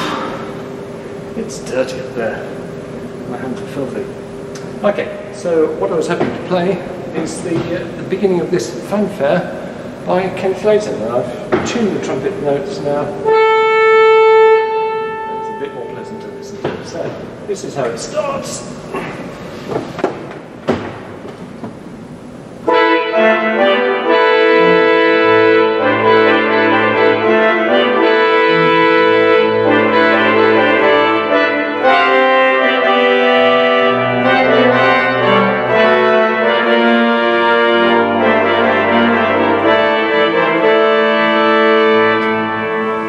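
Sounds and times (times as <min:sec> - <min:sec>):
pipe organ fanfare: 0:12.0 - 0:16.7, 0:22.6 - 0:43.0
deep pedal bass notes: 0:21.9 - 0:43.0.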